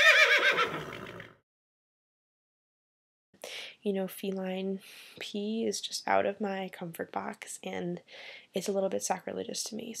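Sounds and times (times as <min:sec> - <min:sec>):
horse whinny: 0:00.0 - 0:01.4.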